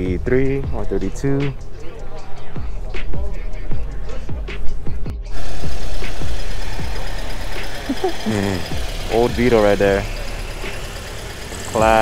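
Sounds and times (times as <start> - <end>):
music with deep beat: 0.0 - 12.0.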